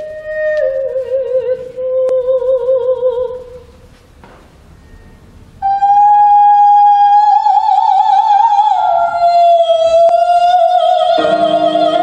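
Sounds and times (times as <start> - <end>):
woman singing operatic notes: 0.0 - 3.7, 5.6 - 12.0.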